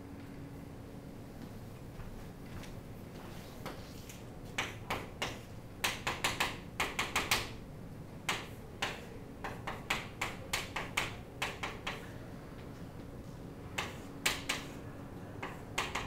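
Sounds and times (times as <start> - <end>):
chalk tapping on a blackboard: 3.6 - 7.6, 8.3 - 12.0, 13.8 - 14.8, 15.4 - 16.0.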